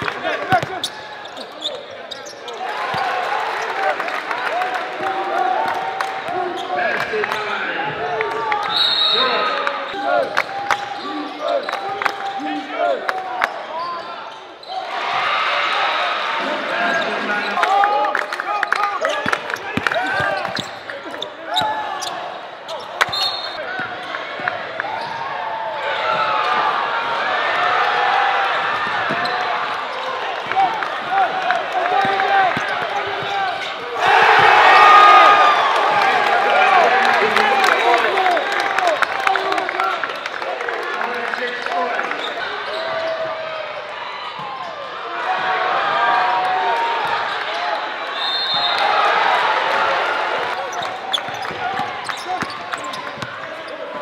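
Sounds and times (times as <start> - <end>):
crowd cheering: 0.0 - 54.0
sneakers squeaking on hardwood: 19.1 - 24.1, 50.6 - 54.0.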